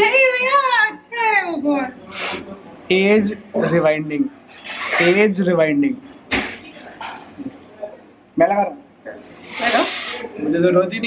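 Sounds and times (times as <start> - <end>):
breathy hissing vocal sound: 9.3 - 10.4.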